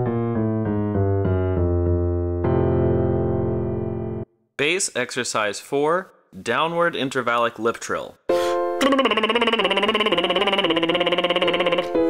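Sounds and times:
piano note: 0.0s - 4.3s
man doing a lip trill: 8.8s - 12.0s.

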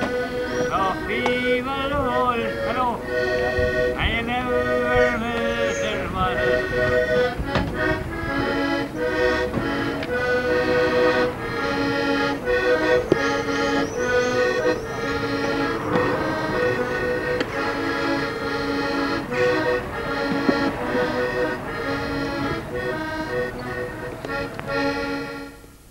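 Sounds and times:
button accordion playing a brisk tune: 0.0s - 25.9s.

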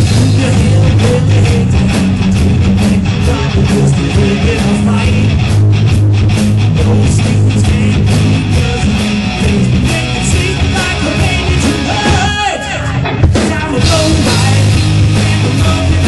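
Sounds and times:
bass guitar: 0.0s - 16.0s
drum kit: 0.0s - 16.0s
electric guitar: 0.0s - 16.0s.

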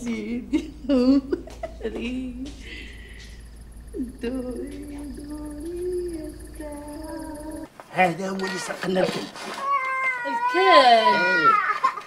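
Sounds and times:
high-pitched wailing cry: 9.6s - 11.9s.

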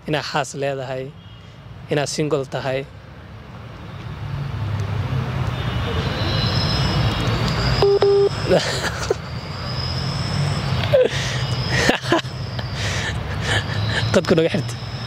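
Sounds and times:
mobile phone beep: 5.9s - 12.5s.

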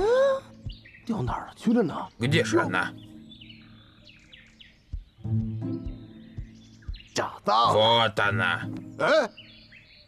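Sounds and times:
birds chirping: 0.0s - 10.0s
soft background music: 0.0s - 10.0s.

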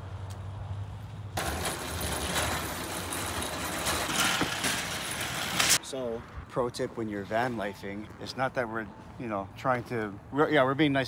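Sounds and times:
shopping carts rattling on asphalt: 1.4s - 5.8s.

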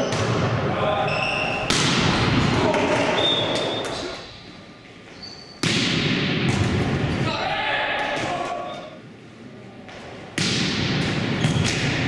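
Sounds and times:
volleyball impacts: 1.6s - 4.0s, 5.6s - 7.0s, 9.9s - 12.0s
players' voices and shouts: 7.1s - 9.0s.

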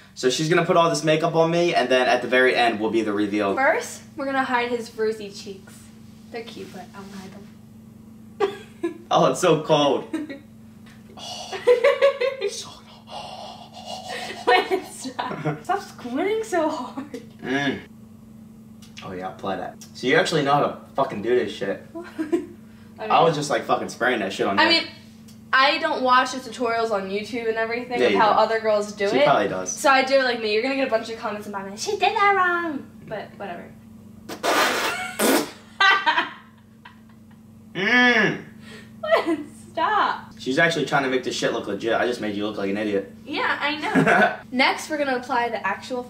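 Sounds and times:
man laughing: 11.5s - 12.8s, 13.8s - 15.7s, 22.0s - 22.5s, 34.9s - 39.5s, 43.8s - 44.4s
man blowing a raspberry: 12.9s - 14.5s, 17.4s - 17.9s, 34.3s - 35.7s, 37.7s - 38.5s.

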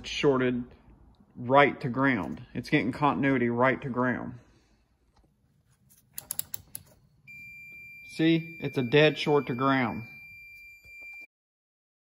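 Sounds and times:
multimeter dial clicking: 6.1s - 6.9s.

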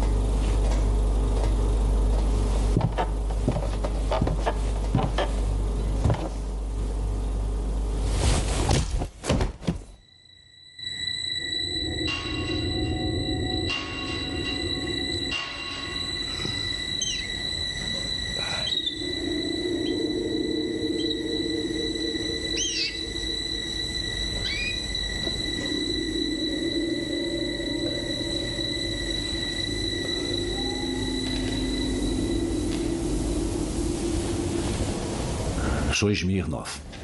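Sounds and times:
high steady ringing tones: 10.0s - 36.1s
low droning hum: 10.6s - 36.0s
short sliding squeals: 10.8s - 34.6s.

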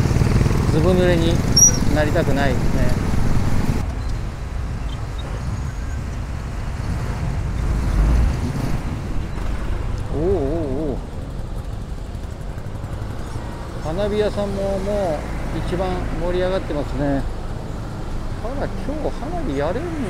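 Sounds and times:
idling cars and motorcycles: 0.0s - 20.0s.

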